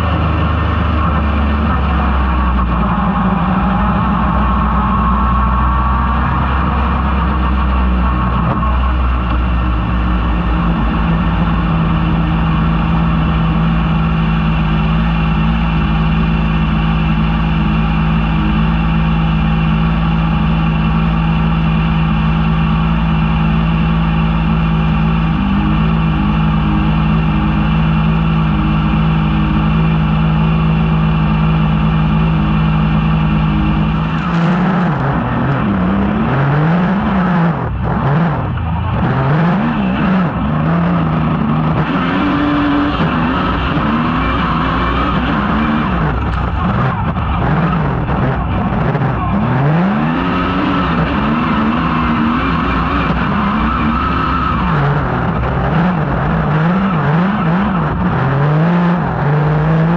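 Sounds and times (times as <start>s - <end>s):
buggy engine idling and revving: 0.0s - 59.9s.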